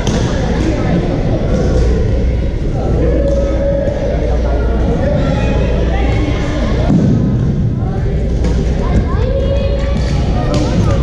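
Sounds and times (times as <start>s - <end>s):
murmur of echoing voices: 0.0s - 11.0s.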